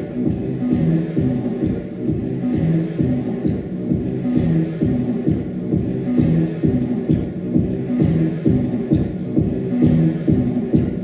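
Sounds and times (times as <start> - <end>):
looped music with throbbing tones: 0.0 - 11.0.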